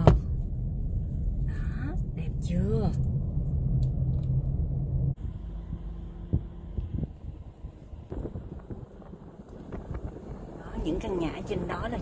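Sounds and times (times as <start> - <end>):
road and engine rumble: 0.0 - 12.0
steady low hum: 0.0 - 12.0.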